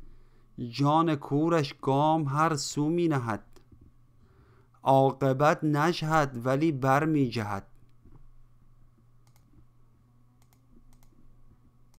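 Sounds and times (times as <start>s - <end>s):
low steady hum: 0.0s - 12.0s
faint computer clicks: 9.2s - 9.7s, 10.4s - 11.3s.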